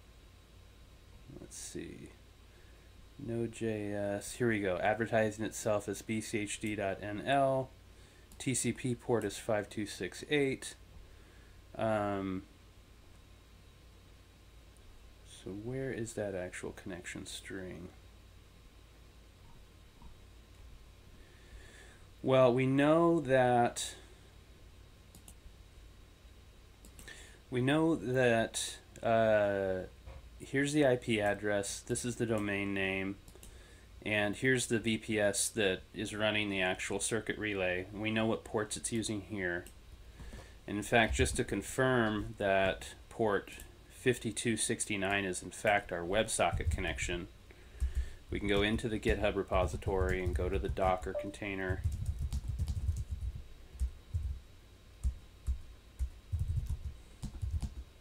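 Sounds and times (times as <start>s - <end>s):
room hum: 0.0s - 58.0s.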